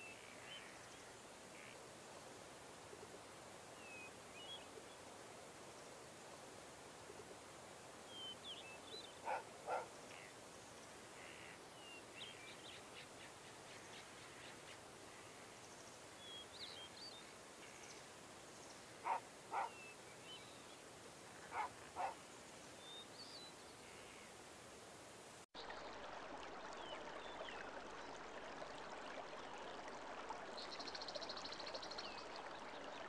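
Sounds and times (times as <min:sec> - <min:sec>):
faint birdsong: 0:08.1 - 0:24.4
short animal calls: 0:19.0 - 0:19.8, 0:21.4 - 0:22.2.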